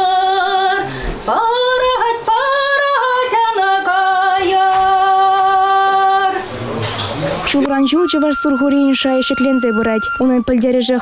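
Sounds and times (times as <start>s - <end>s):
woman singing folk song: 0.0s - 6.4s.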